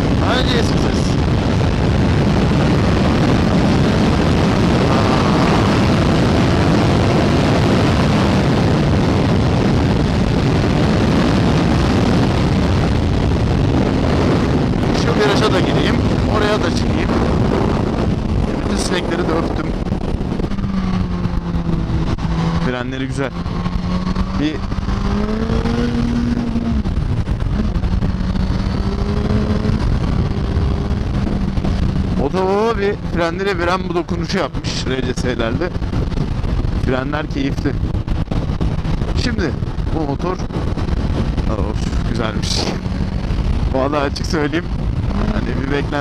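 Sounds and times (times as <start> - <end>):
motorcycle engine running: 0.0 - 46.0
wind rush on microphone: 0.0 - 46.0.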